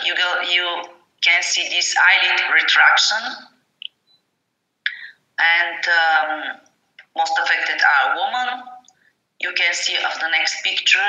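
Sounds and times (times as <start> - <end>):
person speaking: 4.9 - 11.0.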